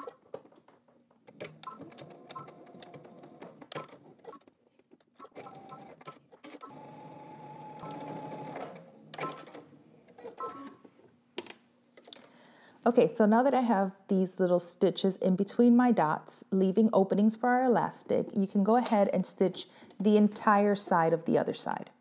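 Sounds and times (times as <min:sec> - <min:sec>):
sewing machine motor humming: 0:05.4 - 0:09.6.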